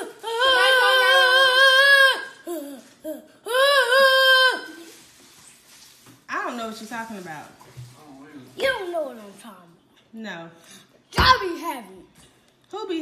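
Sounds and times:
boy making high wavering cries: 0:00.0 - 0:05.0.

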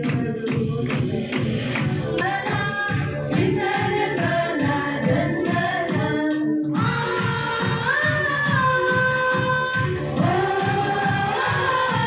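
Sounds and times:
steady rhythmic beat: 0:00.0 - 0:12.0
women singing into microphones: 0:02.2 - 0:12.0.

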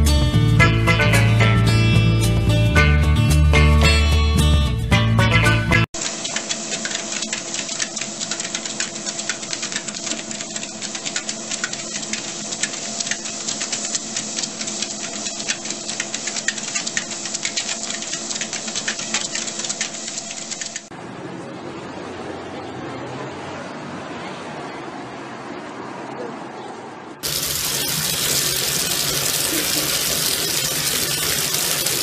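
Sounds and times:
paws ticking on treadmill belt: 0:06.0 - 0:20.9
treadmill motor hum: 0:06.0 - 0:20.9.

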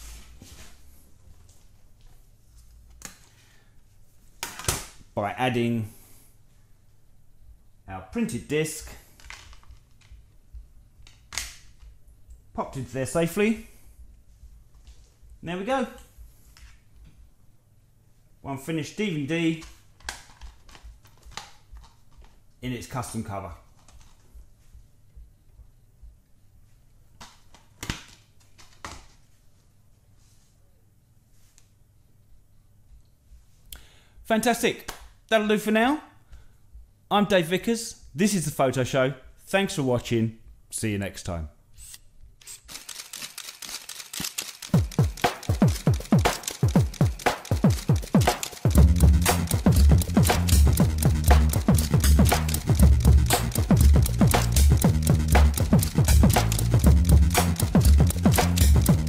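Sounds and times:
rustling scrape: 0:00.0 - 0:01.0.

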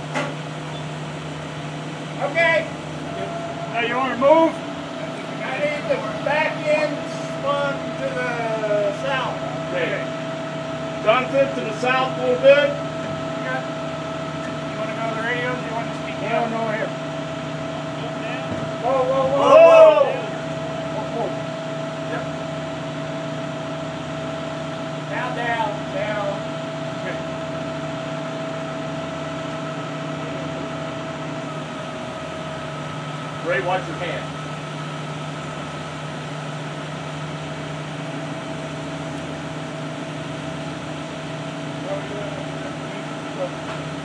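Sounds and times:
machine running steadily: 0:00.0 - 0:44.0
voices calling out: 0:00.6 - 0:31.7.

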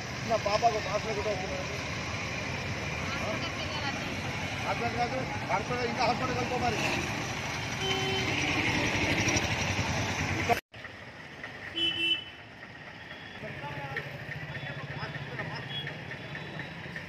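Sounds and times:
motorcycle engines idling: 0:00.0 - 0:17.0
street traffic: 0:00.0 - 0:17.0
horn beep: 0:07.8 - 0:09.4.

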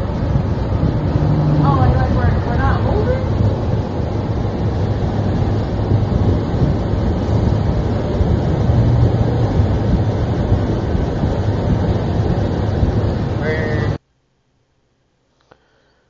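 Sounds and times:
road traffic: 0:00.0 - 0:14.0
wind on microphone: 0:00.0 - 0:14.0.

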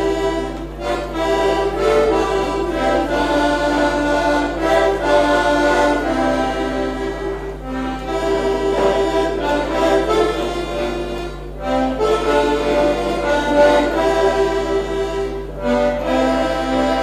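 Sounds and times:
button accordion folk tune: 0:00.0 - 0:17.0.

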